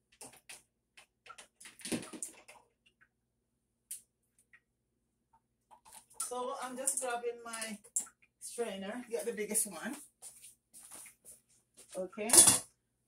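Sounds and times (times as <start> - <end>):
kitchenware clatter: 12.2 - 12.7
kitchenware clicking and knocking: 12.2 - 12.7.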